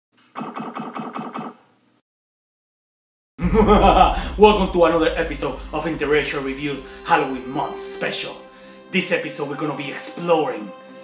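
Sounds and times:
stuttering pitched pulses: 3.4s - 8.6s.

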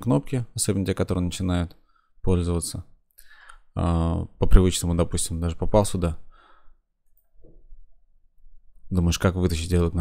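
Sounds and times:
faint breath: 1.8s - 2.2s, 3.2s - 3.7s, 6.2s - 6.9s.

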